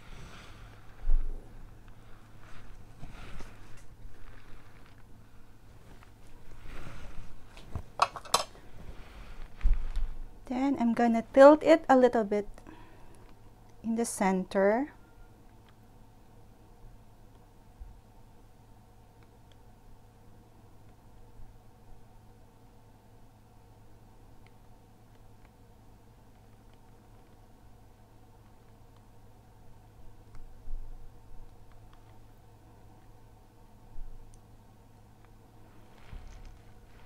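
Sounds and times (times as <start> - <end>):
low hum: 0.0 - 37.0.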